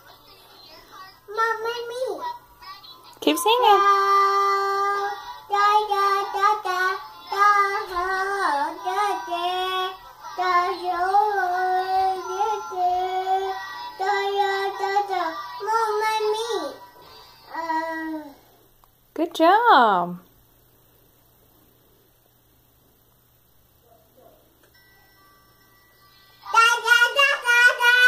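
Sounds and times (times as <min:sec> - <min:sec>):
toddler girl singing: 0:00.6 - 0:02.9, 0:03.8 - 0:18.4, 0:26.4 - 0:28.0.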